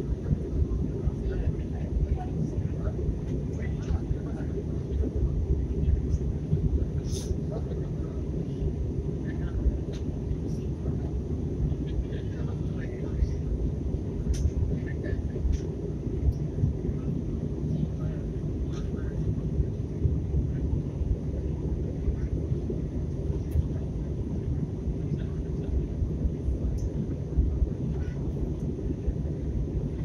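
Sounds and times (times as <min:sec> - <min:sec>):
airliner cabin engine noise: 0:00.0 - 0:30.0.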